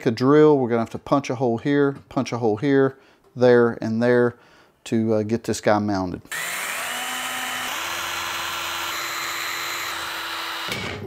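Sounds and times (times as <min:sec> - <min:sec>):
cordless drill boring into case: 0:06.3 - 0:11.0.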